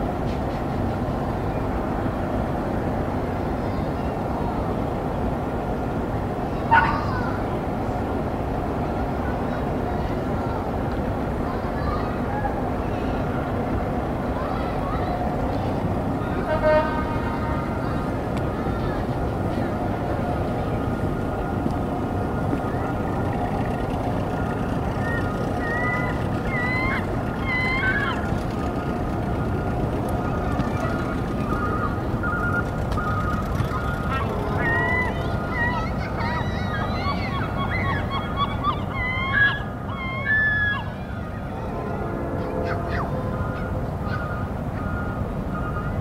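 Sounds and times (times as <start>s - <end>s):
constant rushing noise: 0.0s - 46.0s
short horn-like honk: 16.4s - 17.6s
pitched sliding calls: 21.3s - 39.5s.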